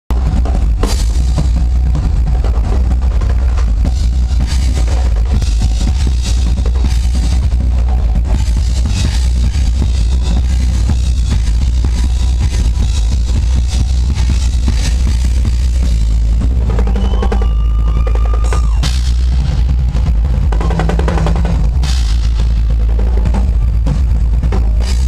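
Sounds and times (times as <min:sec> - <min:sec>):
bass-heavy backing track: 0:00.1 - 0:25.0
drum kit played fast: 0:00.1 - 0:25.0.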